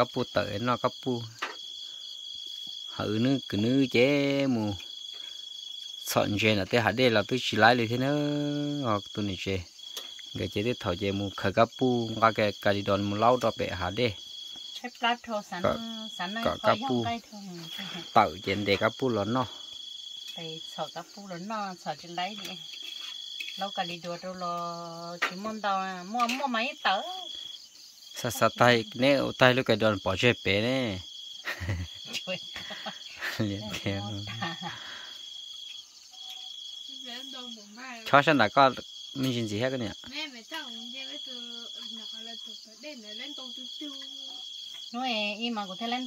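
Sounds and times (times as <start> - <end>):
crickets trilling: 0.0 - 46.0
people talking: 14.8 - 19.5, 20.4 - 22.6, 23.6 - 27.3, 28.2 - 31.0, 31.6 - 34.8, 36.9 - 38.6, 39.2 - 46.0.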